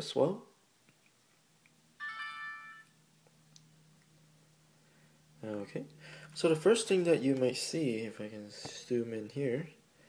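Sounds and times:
electronic power-on chime: 2.0s - 3.0s.

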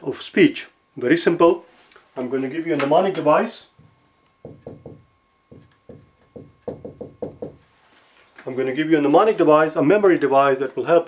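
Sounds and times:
marker tapping on whiteboard: 3.8s - 7.6s.

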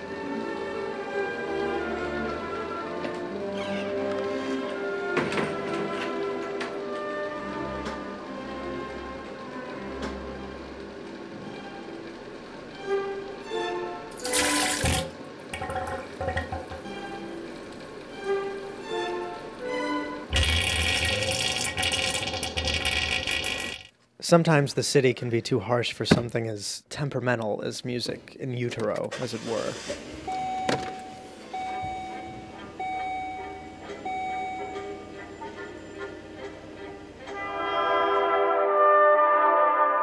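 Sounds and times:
soft bowed string music: 0.0s - 14.4s, 16.2s - 20.4s, 31.5s - 38.7s
car warning chime beeping: 30.3s - 35.1s.

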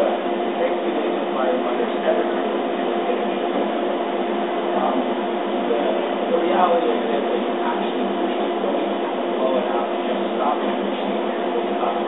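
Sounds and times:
laser cutter humming: 0.0s - 12.0s.

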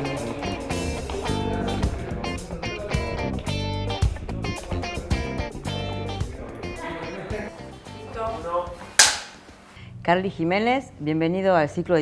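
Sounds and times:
clapperboard snapping shut: 9.0s - 9.5s.

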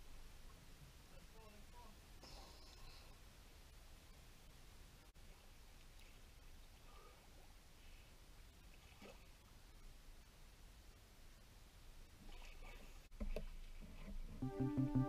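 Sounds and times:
faint sea ambience: 0.0s - 15.0s.

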